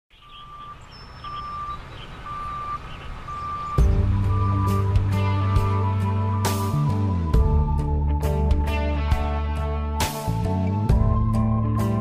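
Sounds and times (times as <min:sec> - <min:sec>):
vehicle reversing alarm beeping: 0:00.1 - 0:07.3
truck engine rumble: 0:00.1 - 0:12.0
music: 0:03.7 - 0:12.0.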